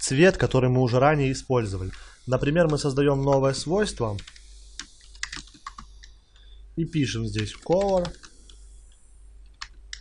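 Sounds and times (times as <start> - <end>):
computer keyboard typing: 2.6 - 6.5, 7.3 - 8.6, 9.4 - 10.0.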